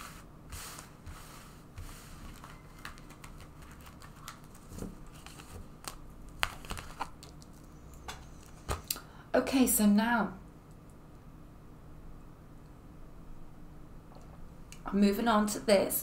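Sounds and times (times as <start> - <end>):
cards rustling and scraping on cloth: 0.0 - 8.7.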